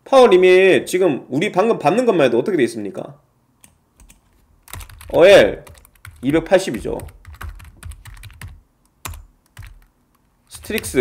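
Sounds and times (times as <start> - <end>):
keyboard typing clicks: 3.6 - 11.0.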